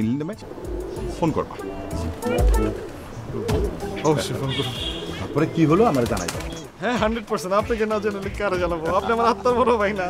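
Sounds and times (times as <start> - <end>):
background music: 0.0 - 10.0
pigeons cooing: 0.4 - 9.4
man's voice: 1.0 - 10.0.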